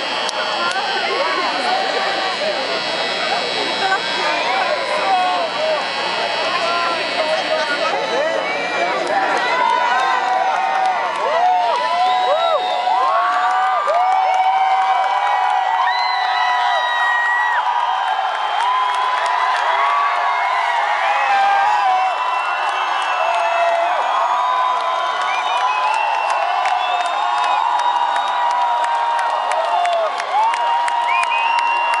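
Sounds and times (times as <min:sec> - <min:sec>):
people clapping: 0:00.0 - 0:05.8, 0:06.6 - 0:32.0
crowd cheering and screaming: 0:00.0 - 0:32.0
whistles: 0:24.0 - 0:28.7, 0:31.0 - 0:32.0.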